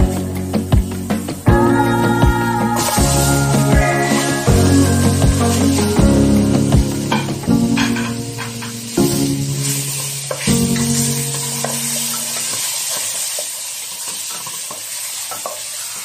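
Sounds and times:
sustained music notes: 0:00.0 - 0:12.5
food sizzling in hot oil: 0:00.0 - 0:16.0.

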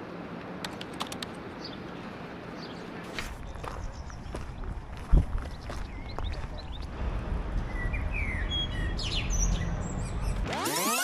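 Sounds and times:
small birds chirping: 0:01.5 - 0:07.0, 0:07.6 - 0:10.5.

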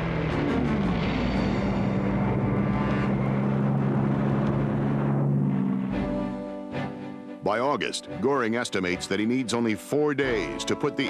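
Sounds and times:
propeller aircraft engine droning: 0:00.0 - 0:09.4.

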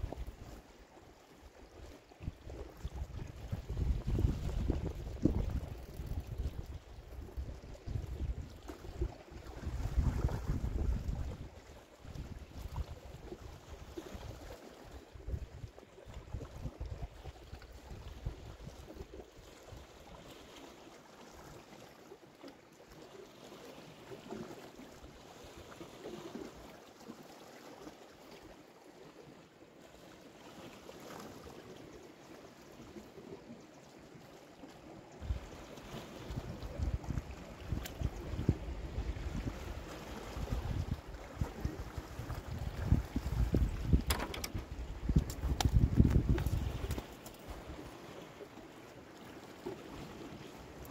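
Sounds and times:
small waves on rocks: 0:00.0 - 0:50.9
wind buffeting microphone: 0:02.2 - 0:13.0, 0:36.2 - 0:47.8.

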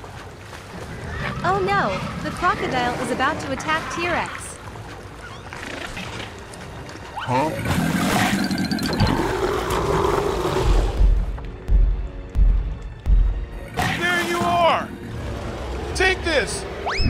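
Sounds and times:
cartoon background music: 0:02.6 - 0:10.0, 0:13.4 - 0:17.0.

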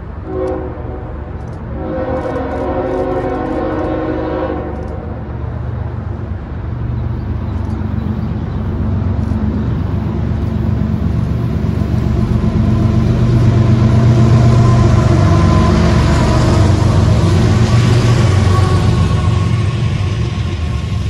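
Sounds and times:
diesel locomotive passing: 0:00.0 - 0:21.0.

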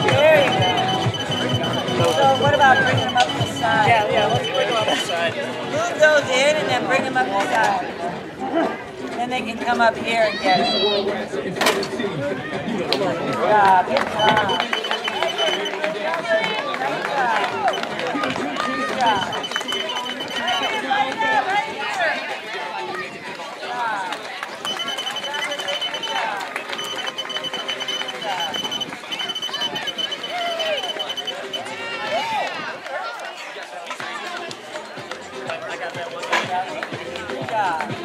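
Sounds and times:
rapid high-pitched beeps: 0:00.0 - 0:05.3, 0:14.1 - 0:15.8, 0:19.0 - 0:20.9, 0:24.6 - 0:31.7
background voices chatter: 0:00.0 - 0:38.0.

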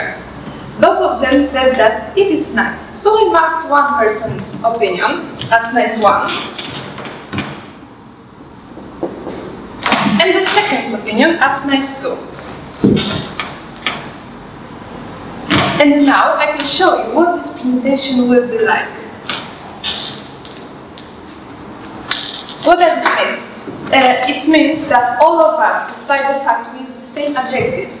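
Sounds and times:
marker pen squeaking on paper: 0:12.9 - 0:13.6, 0:19.2 - 0:20.6, 0:22.1 - 0:22.8.

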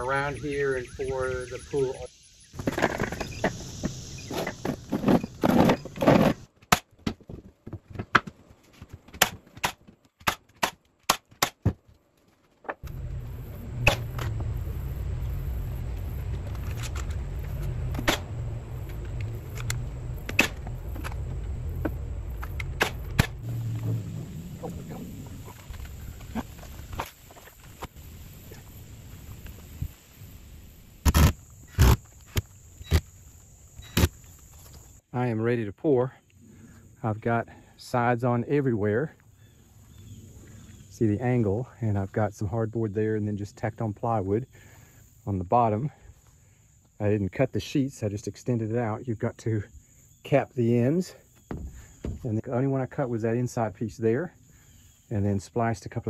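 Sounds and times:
knocks and clicks of boards: 0:06.6 - 0:12.0, 0:51.5 - 0:52.2
low rumble: 0:12.8 - 0:27.0.

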